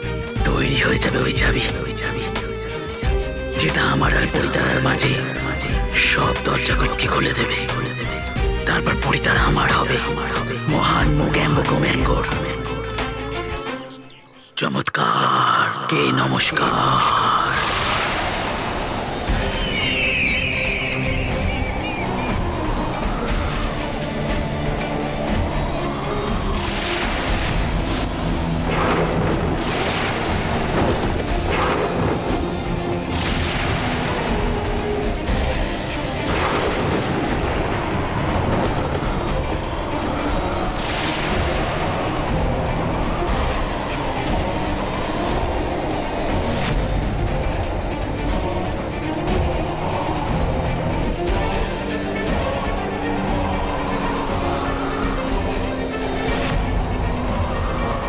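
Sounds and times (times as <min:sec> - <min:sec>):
dramatic background score: 0:00.0 - 0:58.0.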